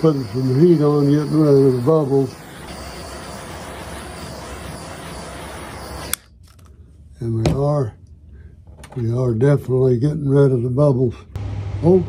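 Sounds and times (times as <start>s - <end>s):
gas torch flame hissing: 0.0s - 6.2s
torch click: 0.0s - 6.7s.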